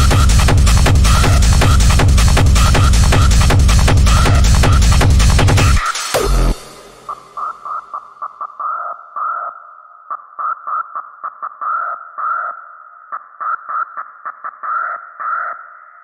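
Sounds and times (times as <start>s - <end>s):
filtered synth stabs: 0.0s - 16.0s.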